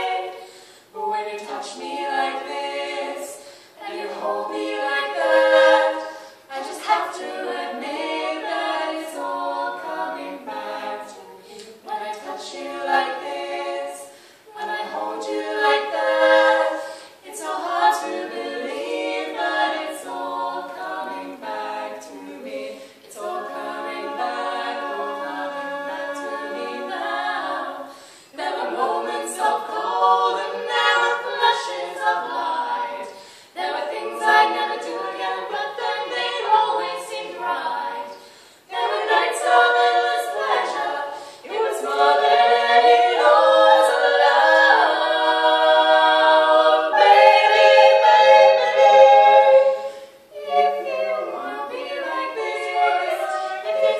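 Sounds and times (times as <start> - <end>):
women singing in close harmony: 0.0 - 53.9
singers breathing: 0.4 - 1.0, 3.4 - 3.8, 6.1 - 6.5, 14.1 - 14.5, 16.8 - 17.2, 27.8 - 28.4, 33.1 - 33.6, 38.2 - 38.7, 41.1 - 41.5, 49.7 - 50.3.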